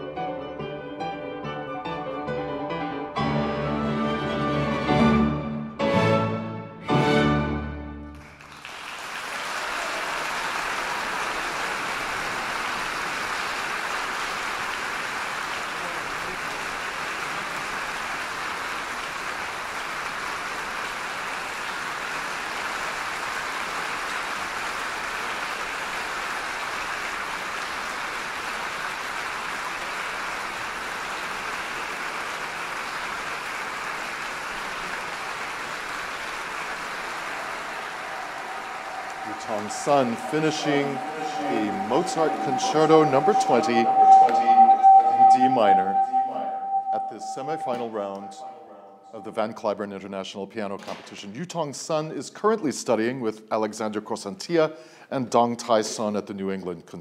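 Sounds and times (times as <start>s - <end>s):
audience applauding: 8.1s - 48.6s.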